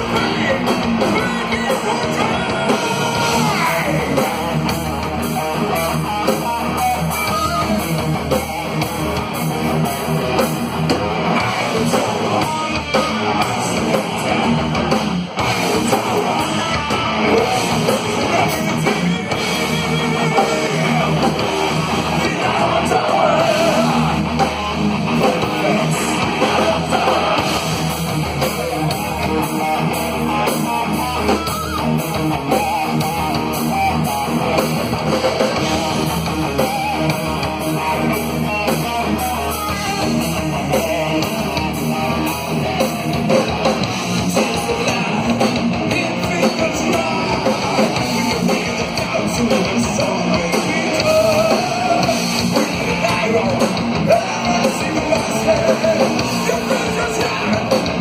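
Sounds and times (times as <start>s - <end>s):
bass guitar: 0.0s - 58.0s
distorted electric guitars: 0.0s - 58.0s
drum kit: 0.0s - 58.0s.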